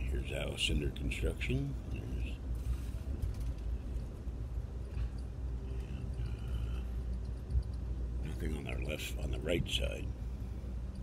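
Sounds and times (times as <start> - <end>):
train rumble inside car: 0.0 - 11.0.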